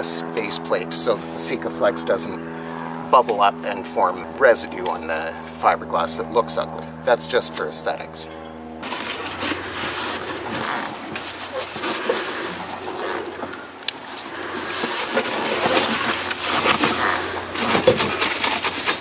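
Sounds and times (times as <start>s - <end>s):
paper towel rubbing surface: 8.8s - 13.2s.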